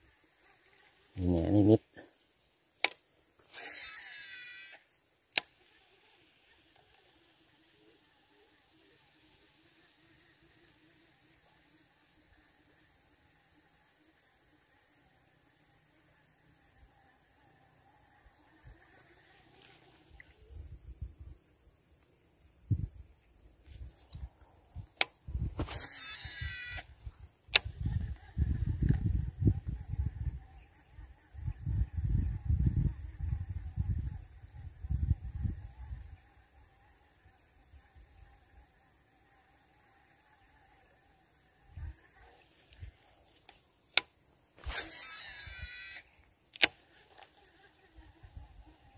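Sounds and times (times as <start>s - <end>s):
insects calling: 0.0s - 48.9s.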